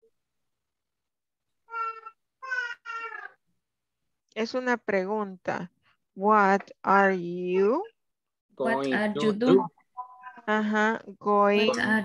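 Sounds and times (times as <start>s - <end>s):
cat meowing: 1.7s - 3.4s.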